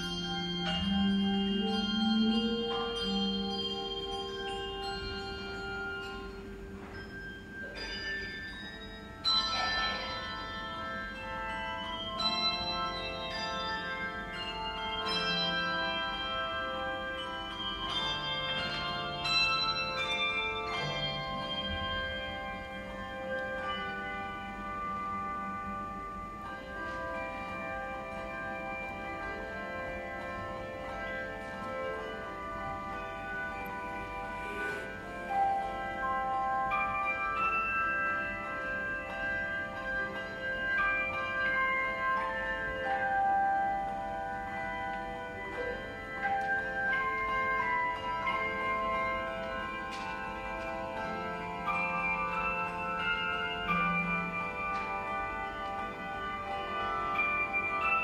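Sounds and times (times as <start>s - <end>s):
handbells ringing chords: 0.0s - 58.0s.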